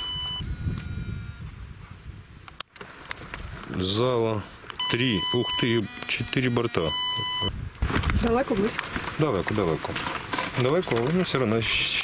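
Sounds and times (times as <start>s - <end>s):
drone detector alert beep: 0.0s - 1.5s, 4.8s - 7.6s.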